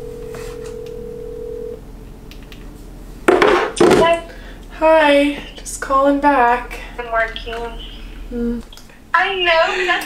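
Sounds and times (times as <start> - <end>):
phone ringback tone: 0.0 - 1.8.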